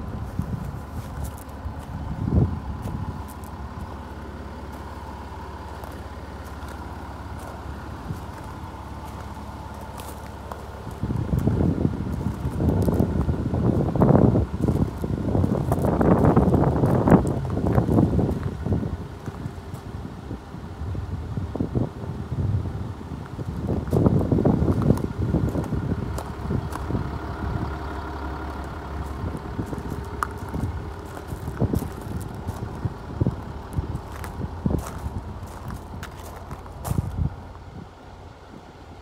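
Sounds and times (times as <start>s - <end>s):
wind buffeting microphone: 0.0s - 4.0s, 5.7s - 38.7s.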